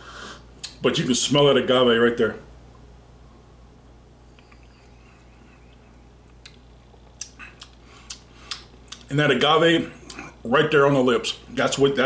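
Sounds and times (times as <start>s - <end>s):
low room hum: 0.0s - 12.0s
mouth sounds and sipping: 4.3s - 9.1s, 10.0s - 10.4s.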